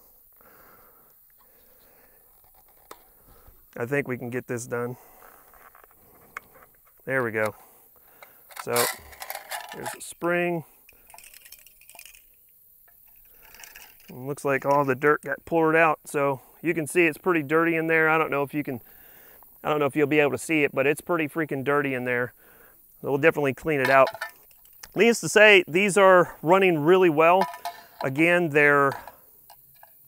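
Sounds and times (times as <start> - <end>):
light clicks of magazine handling: 10.8 - 14.9.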